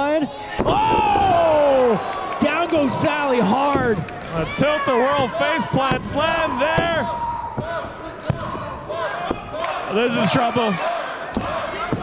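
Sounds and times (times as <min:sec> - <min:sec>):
crowd shouting: 0:00.4 - 0:12.0.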